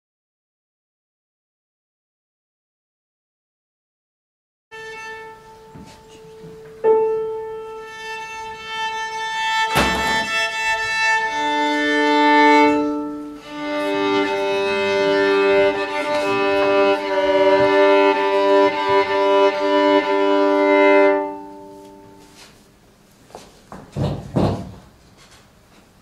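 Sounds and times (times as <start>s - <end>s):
violin being tuned: 4.7s - 22.5s
sharp knock: 9.7s - 10.4s.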